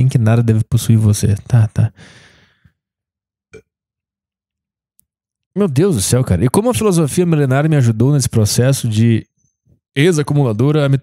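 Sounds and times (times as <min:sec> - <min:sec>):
man exhaling breathily: 0:02.0 - 0:02.7.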